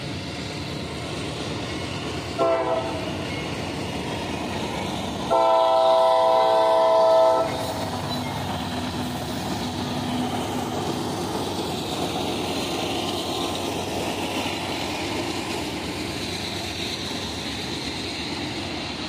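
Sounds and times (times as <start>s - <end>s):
train engines and wheels rumbling: 0.0s - 19.0s
locomotive air horn: 2.4s - 3.0s, 5.3s - 7.6s.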